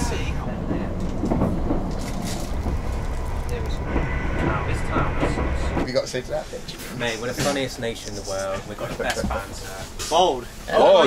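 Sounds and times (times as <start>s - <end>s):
train rumbling inside carriage: 0.0s - 11.0s.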